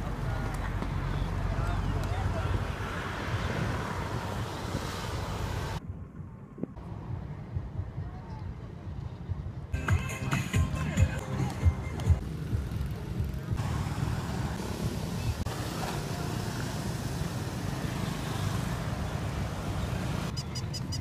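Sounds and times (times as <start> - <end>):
wind rumble on microphone: 0.0 - 9.8
road traffic: 0.0 - 21.0
motorbike passing: 9.8 - 21.0.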